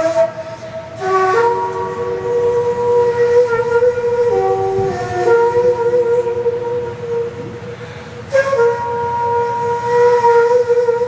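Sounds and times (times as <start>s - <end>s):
bamboo flute long held notes: 0.0s - 11.0s.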